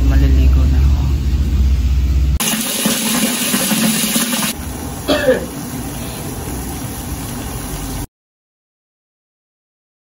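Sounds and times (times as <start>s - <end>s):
low rumble: 0.0s - 2.4s
water boiling in a pot: 2.4s - 8.1s.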